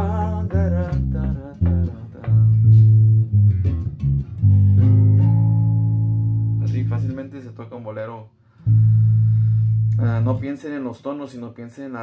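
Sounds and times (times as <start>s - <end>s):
electric bass playing slow bass line: 0.0s - 7.6s, 8.6s - 10.5s.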